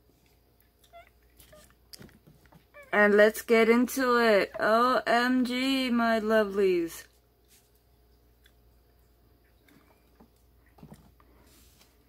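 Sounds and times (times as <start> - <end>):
woman's voice: 2.9 - 7.1.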